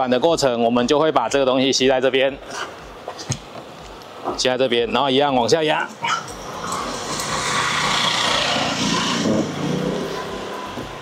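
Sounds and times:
road vehicle passing by: 5.9 - 11.0.

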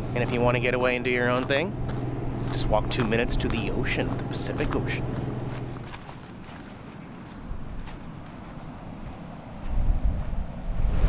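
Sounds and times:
car engine low hum: 0.0 - 6.0
wind buffeting microphone: 7.5 - 11.0.

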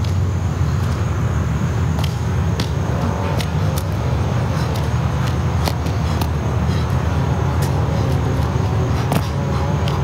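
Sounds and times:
low outdoor rumble: 0.0 - 10.0.

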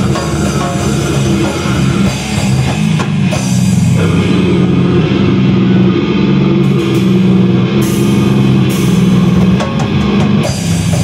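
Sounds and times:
distorted guitars and bass: 0.0 - 11.0
drums and cymbals: 0.0 - 11.0.

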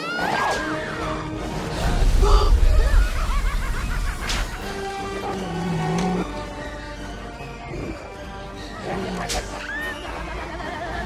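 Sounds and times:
dramatic orchestral music: 0.0 - 11.0.

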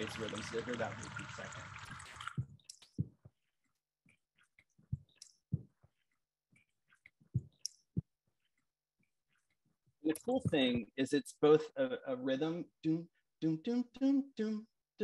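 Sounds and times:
water drops hitting microphone: 0.0 - 3.2.

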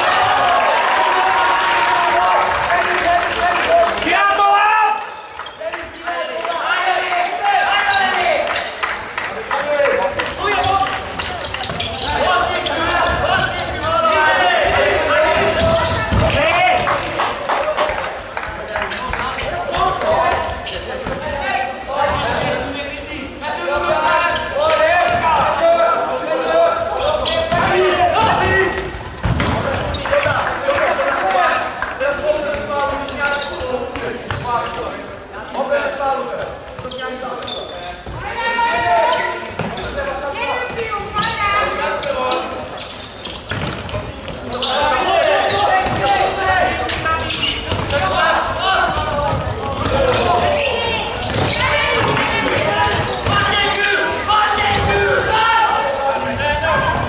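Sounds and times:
voices shouting: 44.4 - 57.0.

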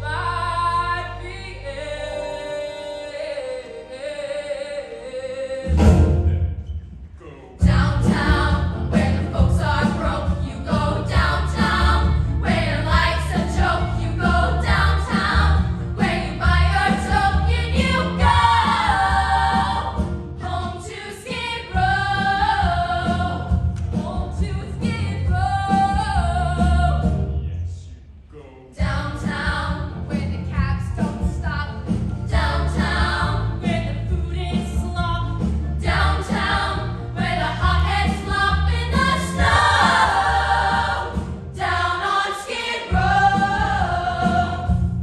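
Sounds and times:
bass-heavy instrumental accompaniment: 5.6 - 6.9, 7.6 - 20.8, 21.4 - 27.6, 28.8 - 45.0
women singing together: 7.6 - 27.1, 28.8 - 30.6, 32.3 - 45.0.

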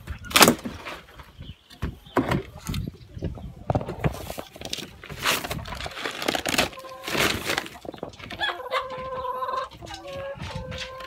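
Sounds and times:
hen scuffling in wooden coop: 3.7 - 11.0.

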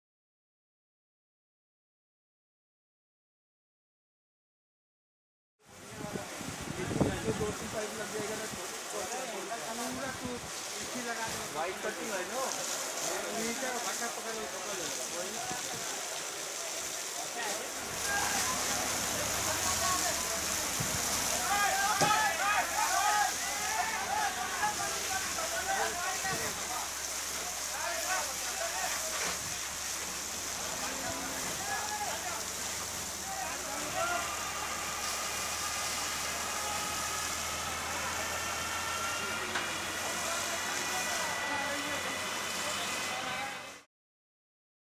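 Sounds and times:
fire hose spraying water: 5.7 - 43.9
people's voices: 5.8 - 43.9
fire engine humming: 9.7 - 43.9.

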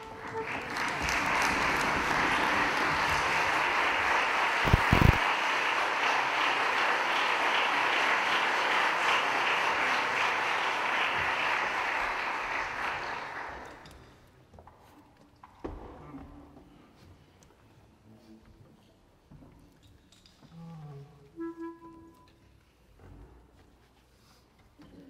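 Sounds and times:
audience applauding: 0.0 - 13.9.

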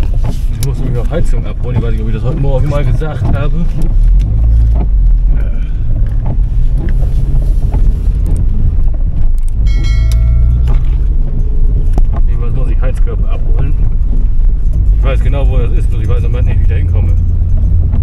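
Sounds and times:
car engine and road rumble: 0.0 - 18.0
short car chime: 9.6 - 11.3.

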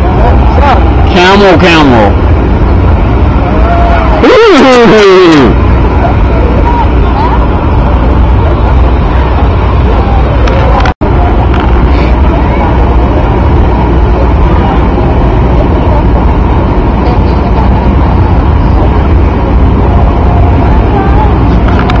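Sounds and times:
loud low rumble: 0.0 - 22.0.

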